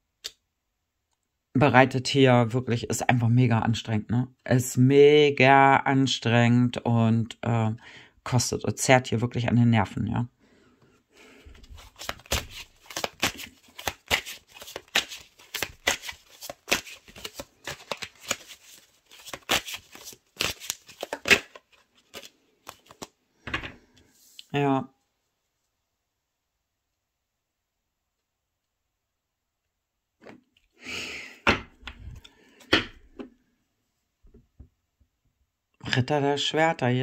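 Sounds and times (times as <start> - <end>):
cards being shuffled: 11.5 - 23.2
cards tapping on wooden tabletop: 31.5 - 33.3.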